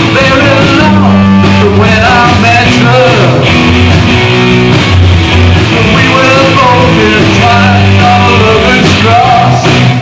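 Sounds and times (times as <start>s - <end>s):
bass guitar: 0.0s - 10.0s
drums: 0.0s - 10.0s
electric guitars: 0.0s - 10.0s.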